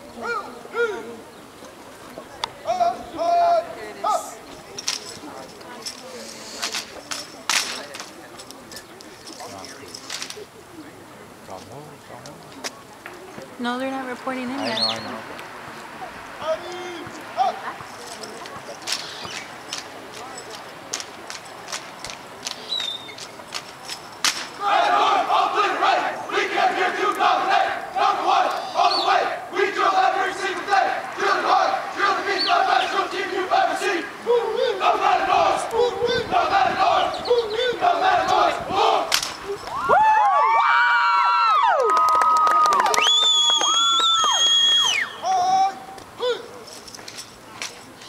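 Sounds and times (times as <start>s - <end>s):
rifle handling slaps: 20.9s - 24.6s, 39.1s - 39.4s
long drawn-out yells: 24.6s - 39.1s, 39.7s - 46.5s
group chanting and shouting in unison: 24.6s - 39.3s.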